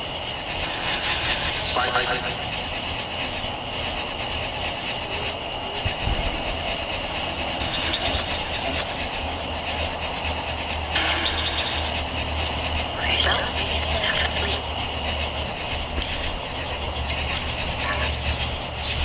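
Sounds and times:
night insects chorus: 0.0s - 19.0s
radio static hiss: 0.6s - 2.9s, 7.0s - 10.1s, 10.9s - 19.0s
voice-like fragment: 17.0s - 19.0s.

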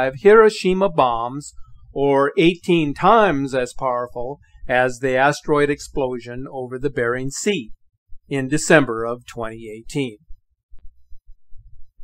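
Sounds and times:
narrator speaking: 0.0s - 10.2s
faint low thumps: 7.6s - 12.0s.

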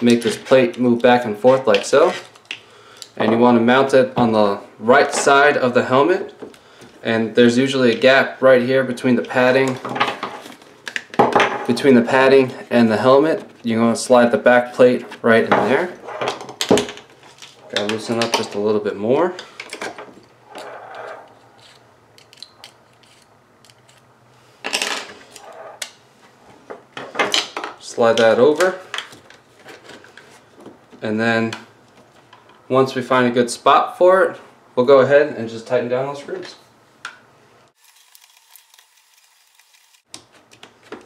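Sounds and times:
rustling scrape: 20.4s - 21.9s, 22.8s - 26.7s
allen key clicking and scraping: 20.5s - 24.1s.

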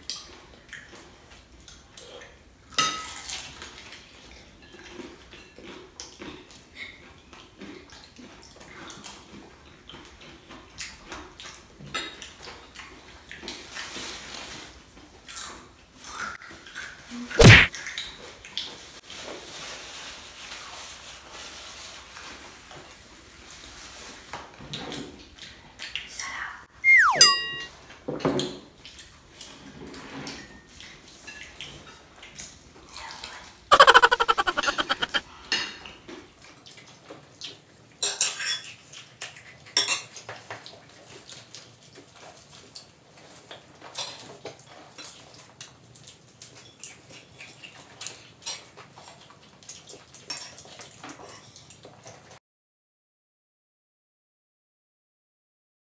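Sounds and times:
cutlery and dishes clinking: 2.7s - 3.4s
falling squeak: 26.8s - 27.4s.

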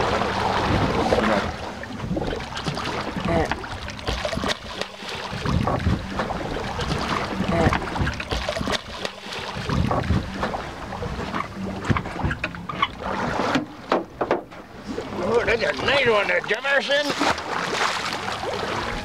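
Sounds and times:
water splashing: 0.0s - 19.0s.

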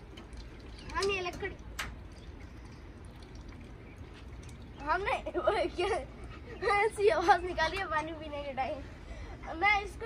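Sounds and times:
pigeon drinking water: 0.0s - 6.5s.

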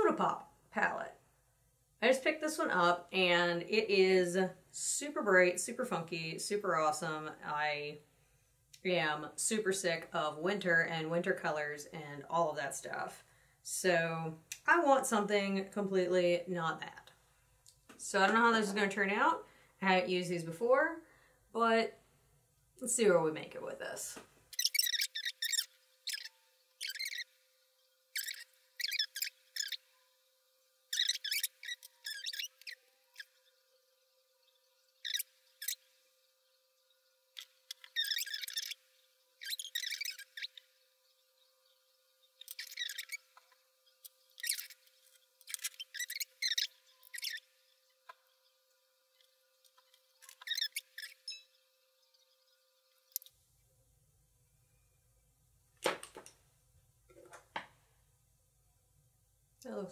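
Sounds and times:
makeup brush squeaky chirps: 24.5s - 27.3s, 28.2s - 30.1s, 30.9s - 33.4s, 35.0s - 35.8s, 37.4s - 38.8s, 39.4s - 40.6s, 42.4s - 43.5s, 44.4s - 44.8s, 45.4s - 47.4s, 49.7s - 51.5s.

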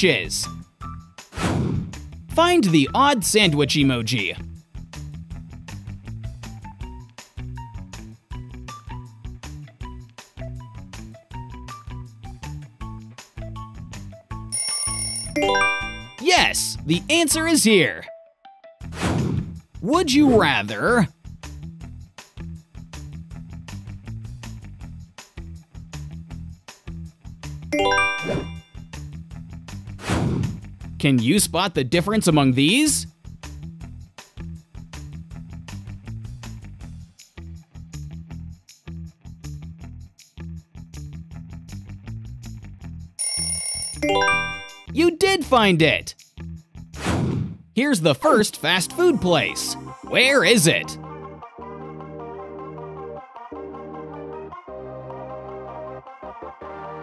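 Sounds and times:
background music with plucked bass: 2.8s - 14.4s, 33.4s - 43.1s
bell ringing: 14.5s - 16.4s, 27.8s - 28.6s, 43.2s - 44.9s
rising run of chime notes: 15.4s - 16.2s, 27.8s - 28.6s, 44.0s - 44.9s.

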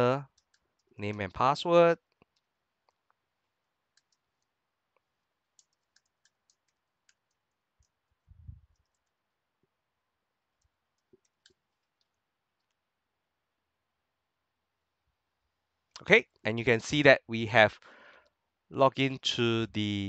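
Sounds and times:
keyboard clicks: 0.3s - 0.9s, 3.9s - 4.5s, 5.6s - 8.0s, 8.7s - 9.2s, 10.6s - 12.8s.

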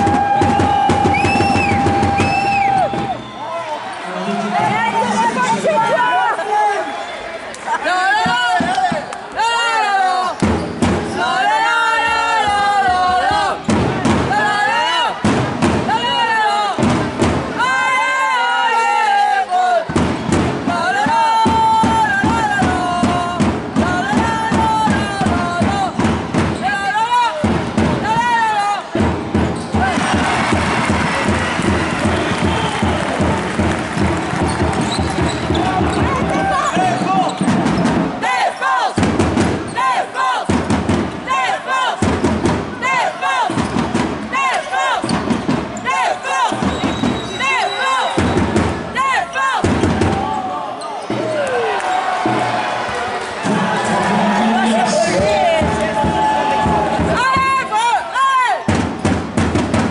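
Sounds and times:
crowd voices: 0.0s - 59.9s
arena music: 51.2s - 58.3s.

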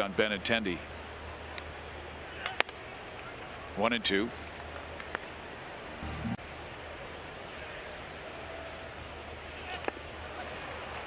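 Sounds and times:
stadium crowd noise: 0.0s - 11.0s
brief low thump: 6.0s - 6.4s.

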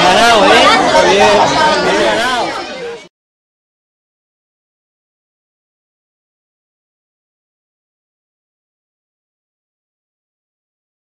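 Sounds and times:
voices and crowd noise: 0.0s - 3.1s.

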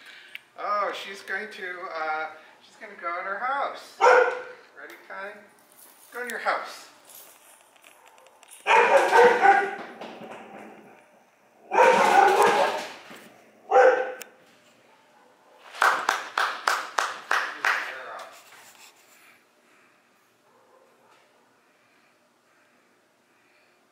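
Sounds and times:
dog barking: 4.0s - 4.6s, 8.0s - 9.9s, 11.7s - 13.0s, 13.7s - 14.2s, 14.8s - 15.7s, 20.4s - 21.6s.

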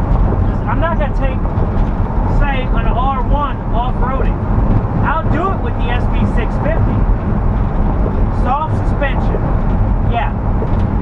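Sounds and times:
van engine and tyres droning: 0.0s - 11.0s
man talking: 0.5s - 1.4s, 2.3s - 4.4s, 5.0s - 7.0s, 8.3s - 9.4s, 10.1s - 10.4s.

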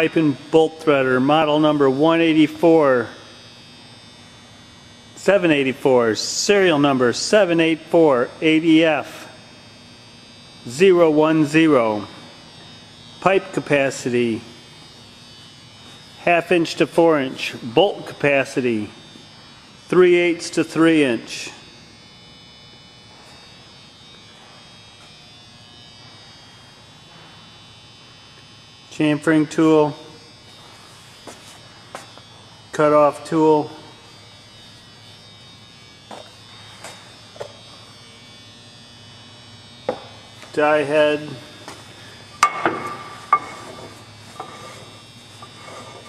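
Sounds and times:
faint electrical hum and buzz: 0.0s - 46.0s
ringing metallic knocks: 42.4s - 43.9s.

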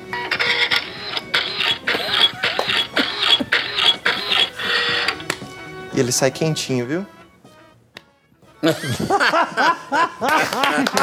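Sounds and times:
mechanical printing noise: 0.0s - 5.3s.

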